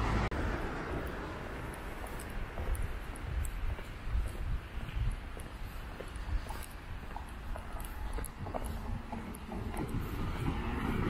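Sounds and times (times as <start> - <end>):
vehicle passing on road: 0.0 - 11.0.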